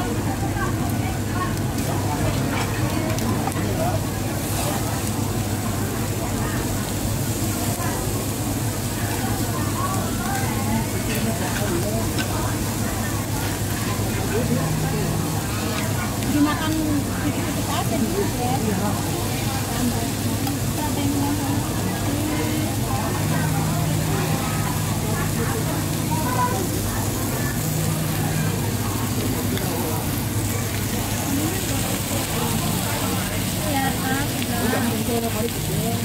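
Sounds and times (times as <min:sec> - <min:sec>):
faint background chatter: 0:00.0 - 0:36.0
meat sizzling on a grill: 0:00.0 - 0:36.0.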